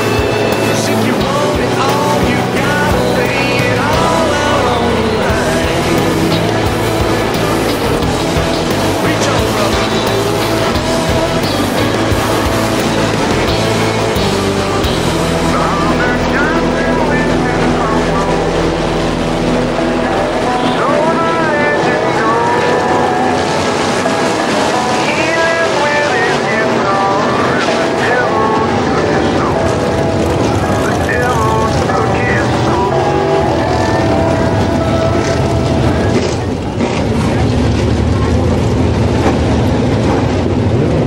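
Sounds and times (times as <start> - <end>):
sprint car engines racing: 0.0 - 41.0.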